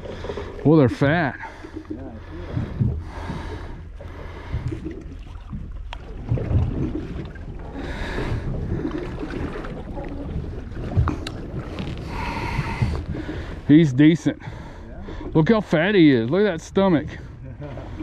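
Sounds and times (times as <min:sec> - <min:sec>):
water slopping against boat hull: 0:00.0 - 0:13.8
wind rumbling on microphone: 0:02.2 - 0:13.7.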